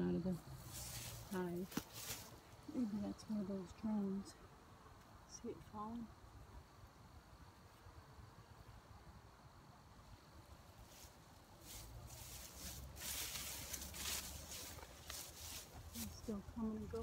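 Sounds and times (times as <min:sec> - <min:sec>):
rustling on microphone: 0:00.6 - 0:02.6, 0:10.8 - 0:17.0.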